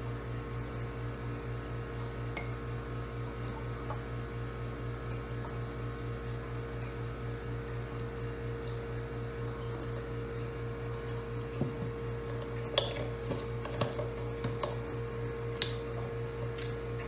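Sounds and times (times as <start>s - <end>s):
electrical machine hum: 0.0s - 17.0s.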